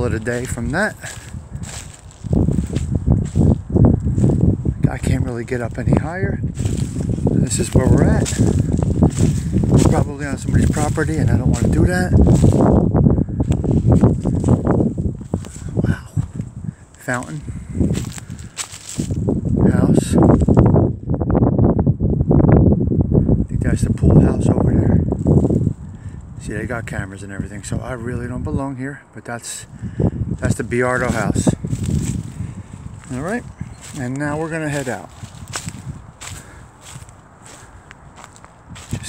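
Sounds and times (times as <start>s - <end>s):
footsteps on dry leaves: 0.0s - 12.9s, 13.5s - 19.6s, 30.4s - 39.0s
wind buffeting microphone: 0.0s - 39.0s.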